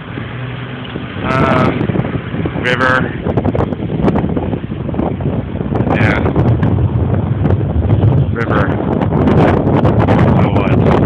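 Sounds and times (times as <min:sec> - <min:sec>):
road traffic rumble: 0:00.0 - 0:11.0
wind buffeting microphone: 0:00.0 - 0:11.0.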